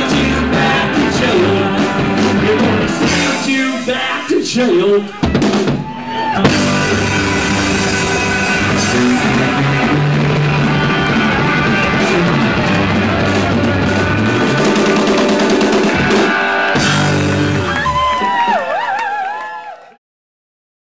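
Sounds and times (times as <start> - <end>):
live rock band playing: 0.0 - 18.8
wavering guitar tones: 6.0 - 17.8.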